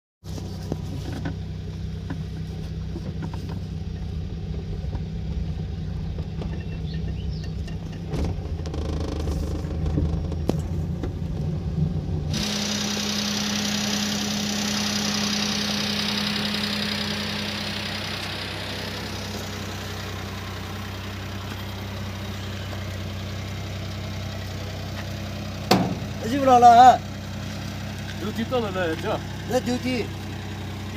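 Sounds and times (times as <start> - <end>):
car engine while driving: 0.2 - 30.9
car engine idling: 0.3 - 30.9.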